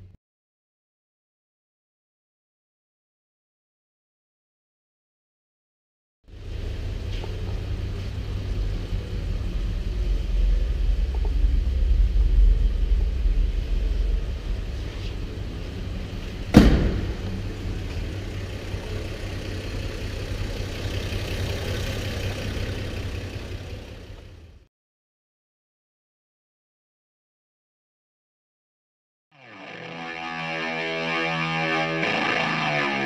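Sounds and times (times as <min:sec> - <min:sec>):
truck engine idling: 0:06.3 - 0:24.7
sharp knock: 0:16.5 - 0:17.4.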